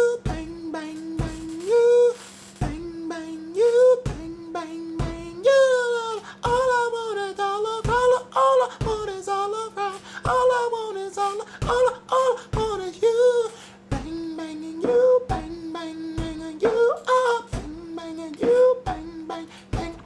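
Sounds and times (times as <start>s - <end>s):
man singing wordless melody: 0.0s - 20.0s
fist knocking on wall: 7.9s - 8.2s.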